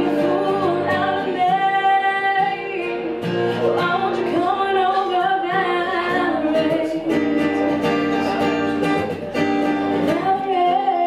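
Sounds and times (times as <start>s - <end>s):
woman singing: 0.0s - 7.7s, 9.9s - 11.0s
acoustic guitar strumming: 0.0s - 11.0s.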